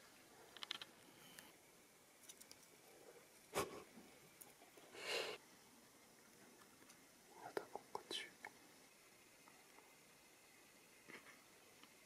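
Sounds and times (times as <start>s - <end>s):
person whispering softly: 7.3s - 8.5s.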